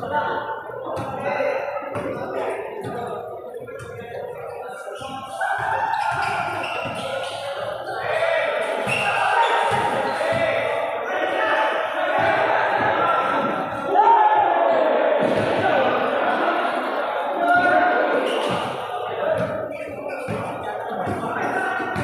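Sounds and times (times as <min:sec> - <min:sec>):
shouts and chatter of people: 0:00.0 - 0:22.0.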